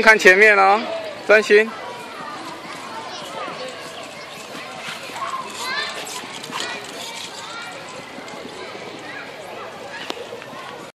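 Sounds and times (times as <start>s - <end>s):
voices chattering and calling out: 0.0s - 10.9s
bike wheels rolling on stone: 1.7s - 10.9s.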